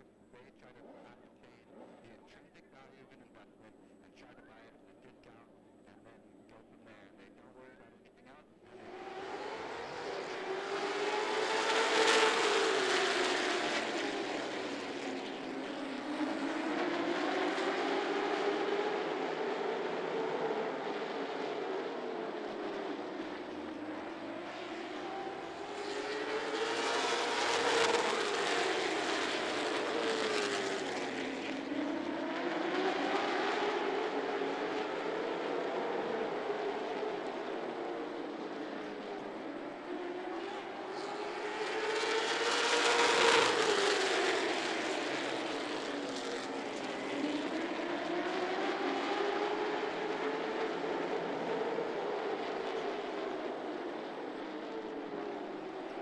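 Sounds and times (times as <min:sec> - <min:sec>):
race car engines running laps: 0:00.0 - 0:56.0.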